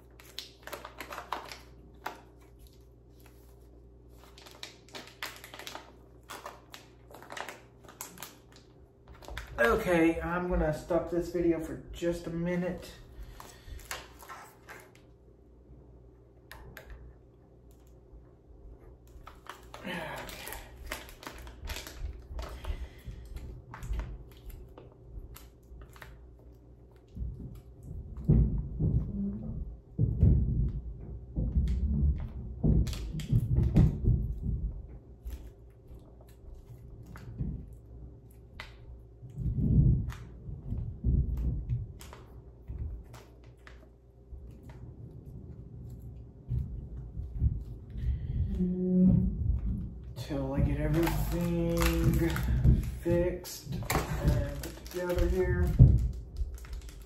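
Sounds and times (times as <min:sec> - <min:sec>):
bag crinkling: 0:00.0 - 0:10.2, 0:19.0 - 0:27.1, 0:50.0 - 0:57.0
dull low thumps: 0:27.1 - 0:35.2, 0:39.2 - 0:43.1, 0:44.4 - 0:54.6.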